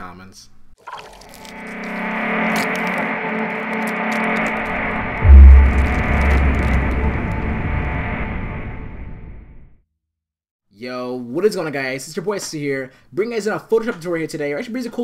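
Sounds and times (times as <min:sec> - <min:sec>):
dense musical swell: 0:01.0 - 0:09.6
deep bass hit: 0:01.7 - 0:09.6.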